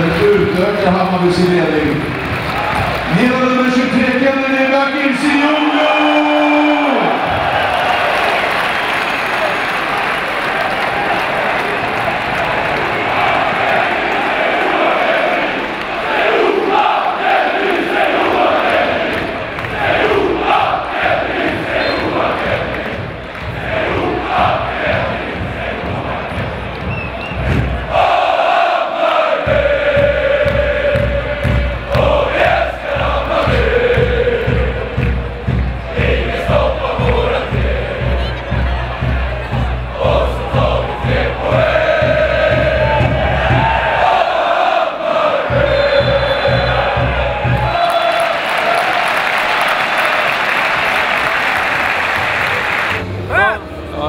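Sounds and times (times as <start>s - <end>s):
steady drumbeat: 0.0s - 53.0s
football crowd chanting: 5.1s - 53.0s.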